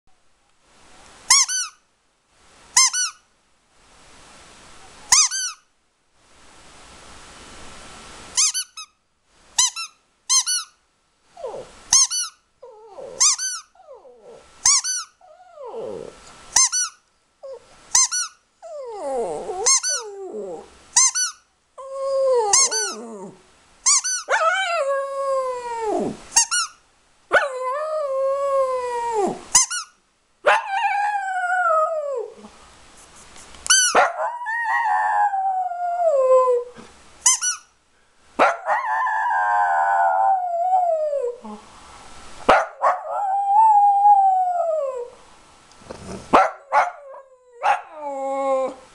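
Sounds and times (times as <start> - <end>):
soft hiss of air: 0.1 - 48.9
squeaky toy squeaking: 1.3 - 1.8, 2.8 - 3.2, 5.1 - 5.6, 8.4 - 9.0, 9.6 - 10.8, 11.9 - 12.4, 13.2 - 13.8, 14.6 - 15.2, 16.6 - 17.0, 17.9 - 18.4, 19.7 - 20.0, 21.0 - 21.4, 22.6 - 23.0, 23.8 - 24.3, 26.4 - 26.8, 29.5 - 30.0, 33.7 - 34.0, 37.2 - 37.7
high squeak: 8.4 - 8.9
dog howling: 30.5 - 32.4, 34.0 - 36.7, 38.4 - 41.4, 46.5 - 48.9.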